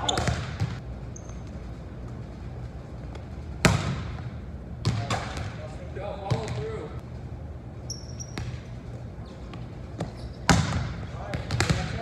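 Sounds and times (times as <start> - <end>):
shoe squeak: 0.0 - 0.4, 1.1 - 1.7, 7.8 - 10.6
steady low hum: 0.0 - 12.0.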